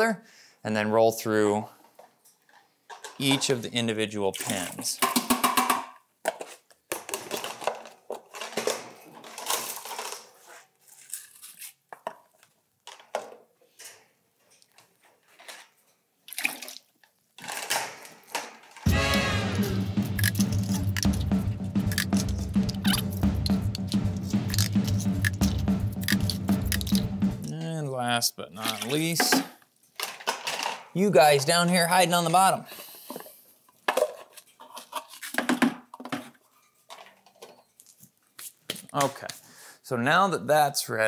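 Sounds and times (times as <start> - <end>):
music with a steady beat: 18.9 - 27.5.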